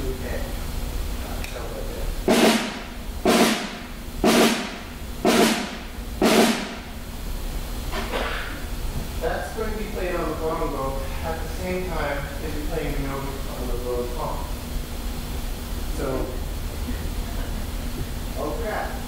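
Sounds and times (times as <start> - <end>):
snare drum drags: 2.2 - 7.0.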